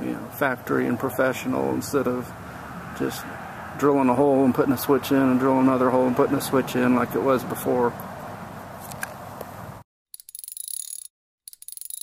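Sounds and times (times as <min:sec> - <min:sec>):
metallic rapid clicking with ringing: 0:10.2 - 0:12.0.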